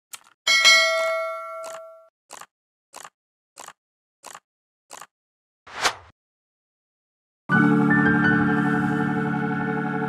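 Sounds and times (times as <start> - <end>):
notification bell ding: 0.5 - 2.1.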